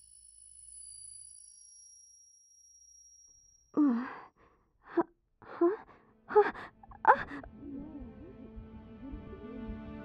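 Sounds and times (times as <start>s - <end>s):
girl sighing: 3.8s - 4.2s, 4.9s - 7.5s
girl gasping: 4.9s - 7.5s.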